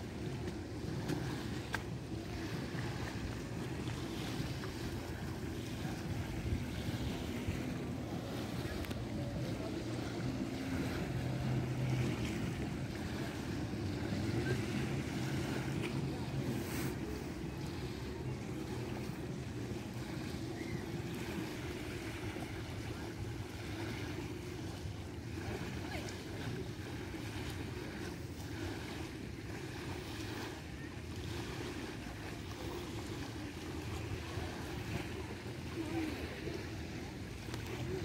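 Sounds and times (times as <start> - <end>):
faint sea ambience: 0.0 - 38.0.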